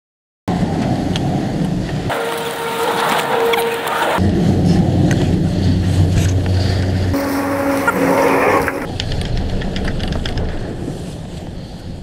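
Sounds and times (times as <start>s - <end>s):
chairlift low rumble: 0.6s - 12.0s
humming tone: 2.1s - 4.6s, 5.5s - 8.9s.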